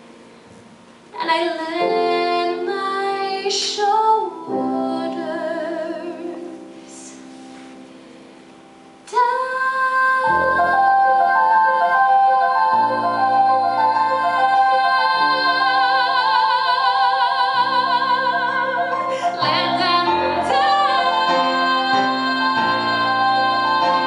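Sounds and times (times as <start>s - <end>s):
piano accompaniment: 0.0s - 24.0s
woman singing with vibrato: 1.2s - 7.3s, 9.1s - 24.0s.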